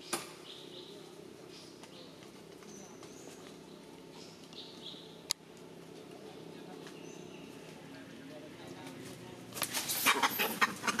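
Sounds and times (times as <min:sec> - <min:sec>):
macaque chattering calls: 0:09.9 - 0:11.0.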